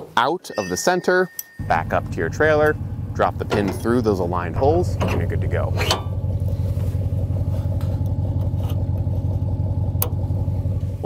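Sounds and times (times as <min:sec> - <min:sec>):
vehicle engine idling: 0:01.6 - 0:11.0.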